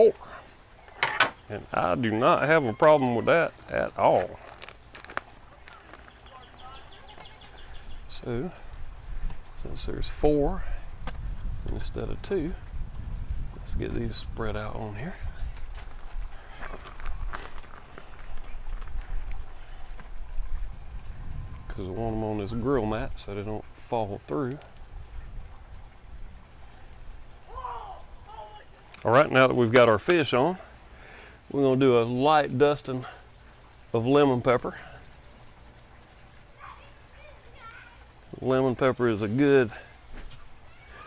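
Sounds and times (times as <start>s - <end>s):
faint distant calls: 0.0s - 9.7s, 21.5s - 41.0s
low steady background rumble: 0.0s - 41.0s
fish handled on grill mat: 3.6s - 7.6s.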